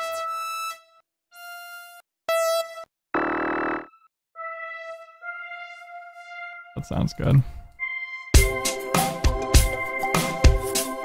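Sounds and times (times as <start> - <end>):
synthesizer lead notes: 2.3 - 7.2.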